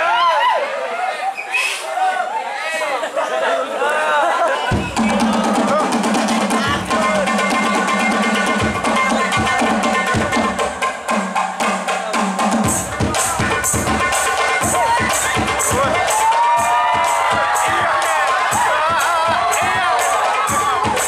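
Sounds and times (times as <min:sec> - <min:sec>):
deep bass drum beats: 0:04.7 - 0:21.0
frame drums playing: 0:04.7 - 0:21.0.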